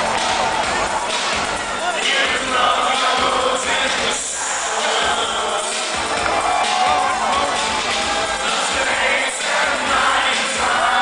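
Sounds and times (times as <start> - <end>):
live synth-pop band playing: 0.0 - 11.0.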